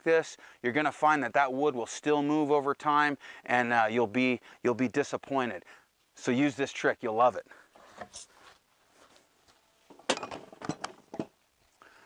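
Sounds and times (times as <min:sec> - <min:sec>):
metal tubing knocking and clinking: 0:10.0 - 0:11.4.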